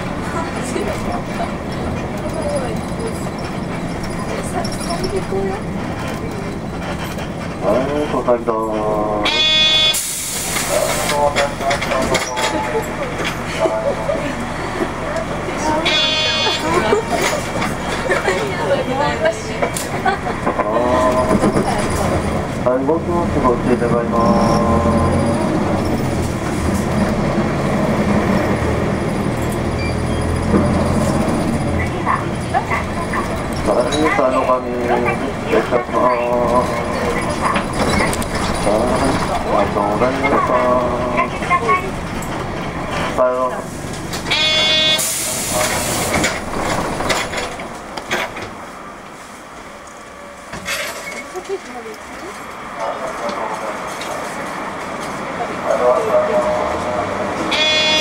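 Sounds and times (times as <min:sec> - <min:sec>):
bus diesel engine running: 0:00.0 - 0:58.0
brake squeal: 0:01.0 - 0:07.9, 0:08.9 - 0:13.4, 0:15.6 - 0:17.9, 0:23.8 - 0:27.3, 0:27.9 - 0:35.2, 0:36.0 - 0:43.1, 0:44.2 - 0:47.5, 0:57.4 - 0:58.0
brake air hiss: 0:09.9 - 0:11.2, 0:45.0 - 0:46.2.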